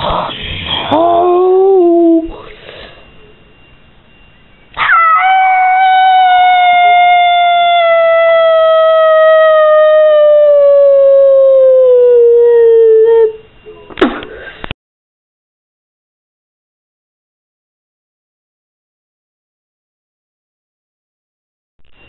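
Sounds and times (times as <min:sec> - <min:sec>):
long falling howl: 0:04.8 - 0:13.4.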